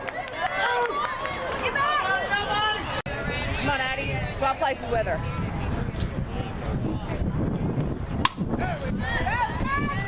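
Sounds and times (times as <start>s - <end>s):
bat cracking a ball: 8.2s - 8.5s.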